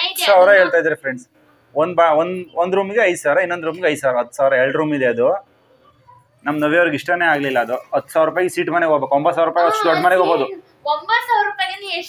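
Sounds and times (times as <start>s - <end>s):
person talking: 6.4s - 10.6s
long drawn-out voiced sound: 9.6s - 10.8s.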